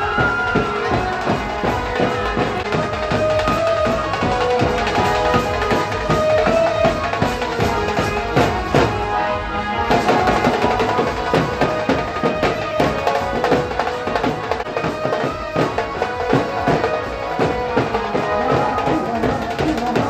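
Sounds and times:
drumming: 0:00.0 - 0:20.0
wind instrument melody: 0:00.0 - 0:20.0.

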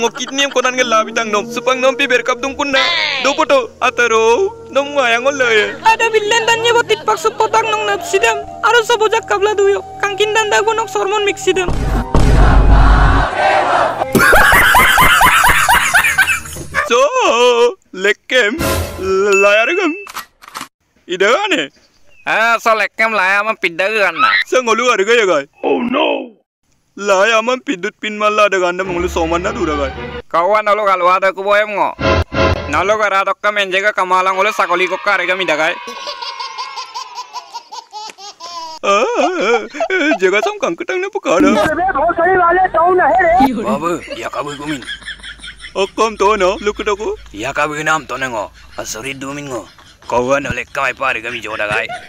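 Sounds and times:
man laughing loudly: 0:00.0 - 0:01.2, 0:14.1 - 0:16.9, 0:35.8 - 0:40.5, 0:43.6 - 0:47.3, 0:48.3 - 0:52.0
crowd shouting: 0:12.3 - 0:14.1, 0:34.5 - 0:37.0
baby laughing: 0:35.8 - 0:40.2.

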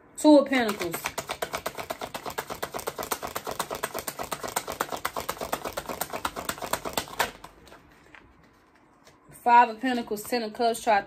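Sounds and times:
cards being shuffled: 0:00.6 - 0:10.4.

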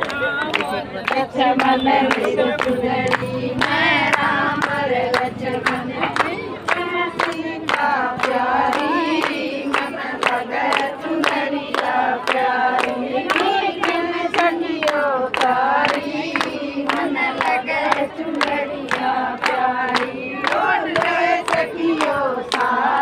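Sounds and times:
rhythmic hand-clapping: 0:00.0 - 0:23.0
women singing together: 0:00.1 - 0:23.0.

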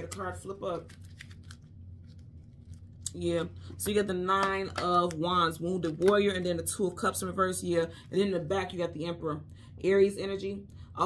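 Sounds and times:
cards being shuffled: 0:00.0 - 0:03.0.

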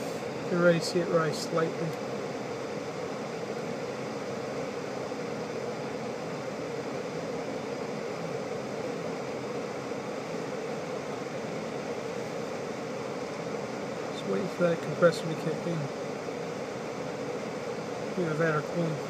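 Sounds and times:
blower fan rushing air: 0:00.0 - 0:19.0.

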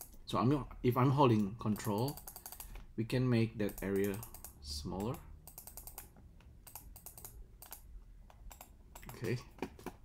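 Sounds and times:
keyboard and mouse clicking: 0:01.4 - 0:02.9, 0:03.6 - 0:10.0.

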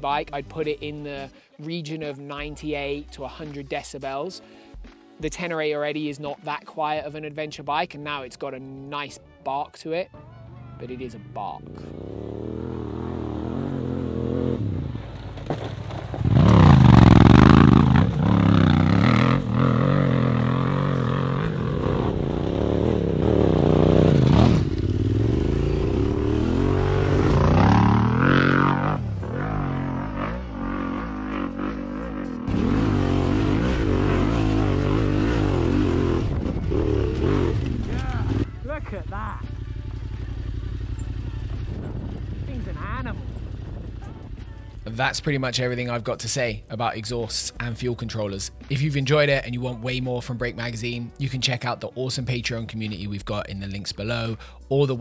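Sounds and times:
motorcycle engine revving: 0:10.5 - 0:44.3.

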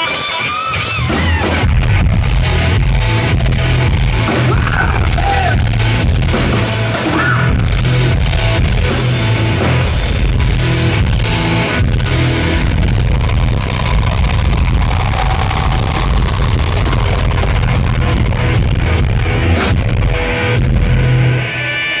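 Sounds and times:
bass guitar: 0:00.0 - 0:22.0
distorted electric guitar: 0:00.0 - 0:22.0
drum kit: 0:00.0 - 0:22.0
live rock band playing: 0:00.0 - 0:22.0.

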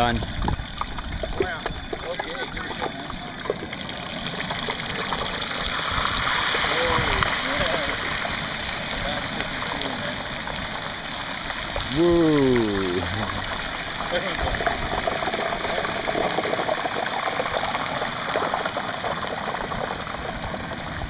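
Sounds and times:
hot oil sizzling and bubbling: 0:00.0 - 0:21.0.

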